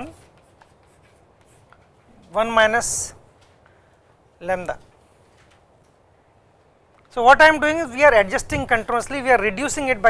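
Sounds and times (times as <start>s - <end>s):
chalk on blackboard: 0.0s - 2.1s.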